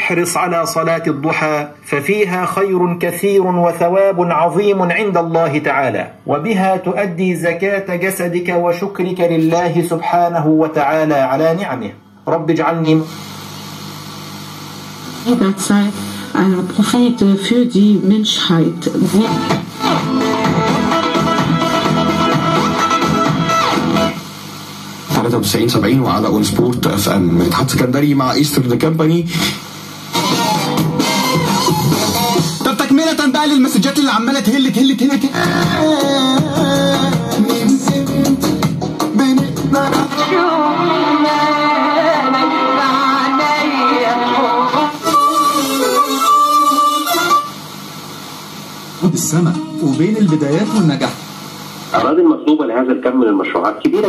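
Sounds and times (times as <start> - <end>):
guitar music on a radio: 18.6 - 25.2, 29.8 - 50.6.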